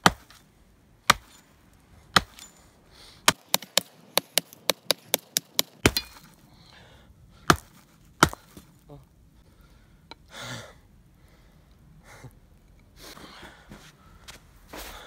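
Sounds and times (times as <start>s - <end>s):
hatchet chopping branch: 0.0s - 0.4s, 1.0s - 1.4s, 2.1s - 2.5s, 3.3s - 6.4s, 7.5s - 8.7s.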